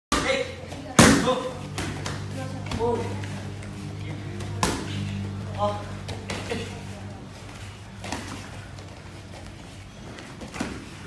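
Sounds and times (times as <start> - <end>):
low hum: 0.7 - 10.4.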